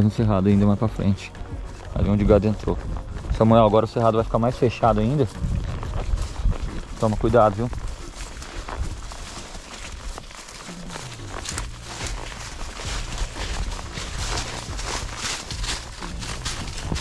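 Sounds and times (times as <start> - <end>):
horse hoof steps: 0.0 - 17.0
vegetation rustling: 0.0 - 17.0.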